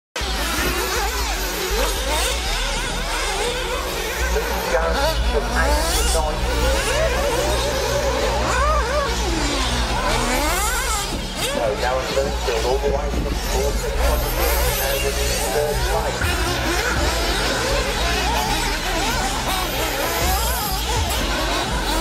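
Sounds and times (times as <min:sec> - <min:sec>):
rc car engines buzzing: 0:00.2 - 0:22.0
steady low hum: 0:00.2 - 0:22.0.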